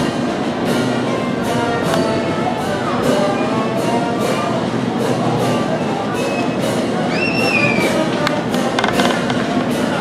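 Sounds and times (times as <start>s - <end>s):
brass band playing: 0.0s - 10.0s
noisy crowd: 0.0s - 10.0s.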